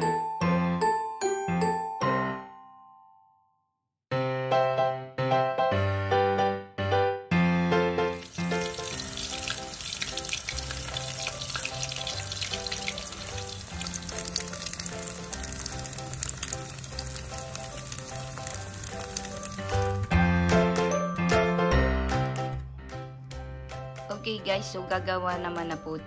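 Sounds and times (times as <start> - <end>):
background music: 0.0 - 3.4, 4.2 - 26.0
patties sizzling in oil: 8.1 - 20.2.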